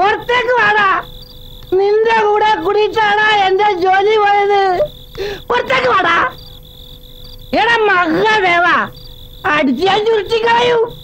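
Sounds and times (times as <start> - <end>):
insect drone: 0.0 - 11.0.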